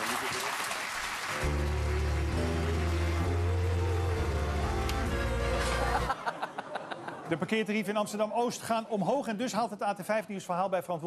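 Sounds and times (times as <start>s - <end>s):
audience applause: 0.0s - 7.2s.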